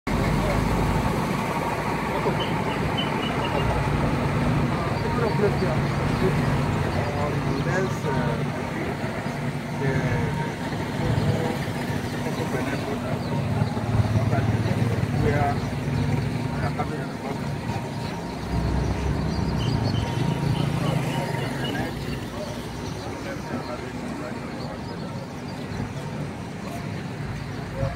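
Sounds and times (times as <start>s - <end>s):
people talking: 0.1s - 27.9s
high chirps: 1.6s - 26.8s.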